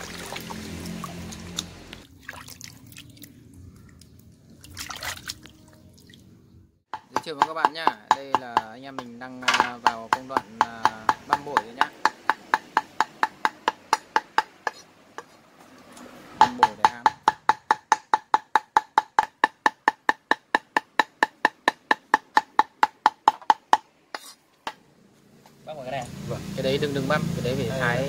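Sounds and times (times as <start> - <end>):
cleaver chopping meat on board: 6.9 - 14.8, 16.4 - 23.8.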